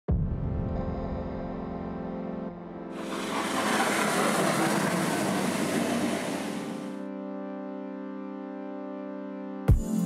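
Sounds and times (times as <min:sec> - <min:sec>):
ambient intro music: 0:00.1 - 0:10.0
loud rush of noise: 0:03.0 - 0:07.0.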